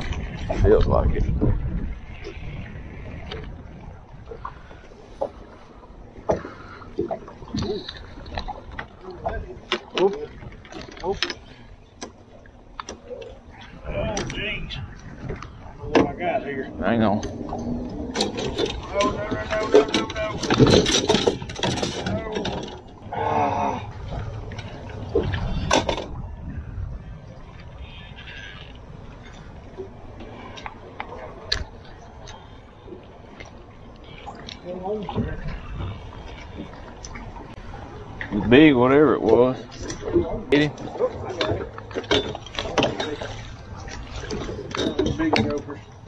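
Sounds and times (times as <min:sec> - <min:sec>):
clicks and knocks of fishing gear: 0:17.2 - 0:23.0.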